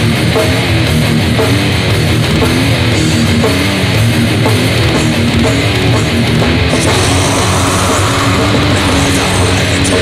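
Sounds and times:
distorted guitars and bass riff: 0.0s - 10.0s
drums: 0.0s - 10.0s.

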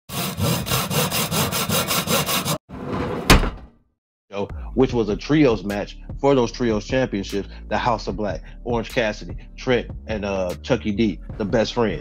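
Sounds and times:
rapid sawing strokes: 0.1s - 2.7s.

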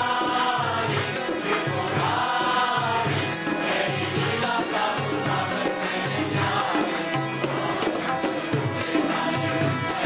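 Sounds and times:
group singing devotional song: 0.0s - 10.0s
steady percussion beat: 0.0s - 10.0s.

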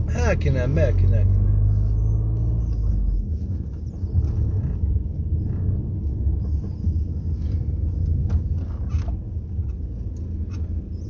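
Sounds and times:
car rumble from inside cabin: 0.0s - 11.0s.

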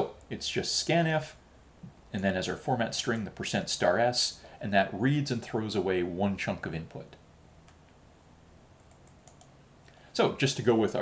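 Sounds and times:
faint computer clicks: 8.8s - 10.0s.

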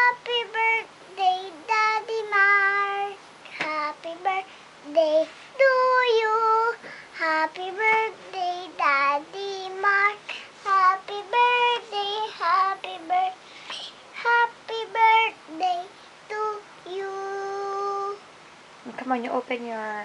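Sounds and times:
girl singing unaccompanied: 0.0s - 18.4s.

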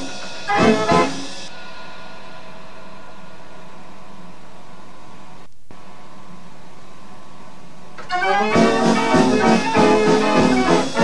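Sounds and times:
faint hum: 0.0s - 10.4s
steady hiss: 0.0s - 11.0s.

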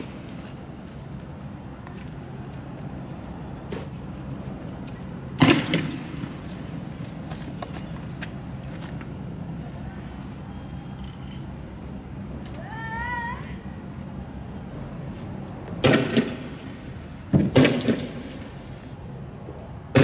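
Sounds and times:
loud gunshot: 5.4s - 6.0s, 15.8s - 16.5s, 17.4s - 18.2s.

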